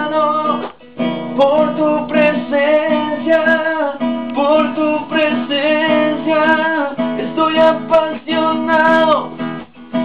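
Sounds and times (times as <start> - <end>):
acoustic guitar: 0.0 - 10.0
man singing: 0.0 - 10.0.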